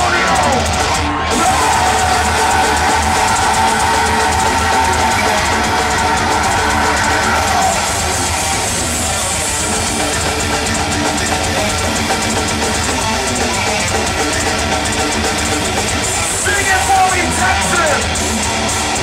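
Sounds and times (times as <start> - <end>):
distorted electric guitars: 0.0 - 19.0
drum kit: 0.0 - 19.0
live heavy metal band: 0.0 - 19.0.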